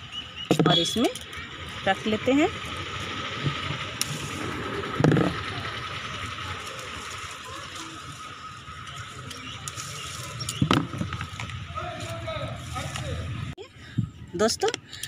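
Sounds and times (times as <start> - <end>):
leaves and twigs rustling: 0.7 - 13.6.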